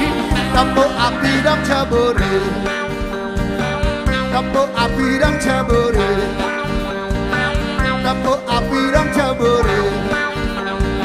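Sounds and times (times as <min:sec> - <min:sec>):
drums keeping a steady beat: 0:00.0 - 0:11.0
live band playing instrumental: 0:00.0 - 0:11.0.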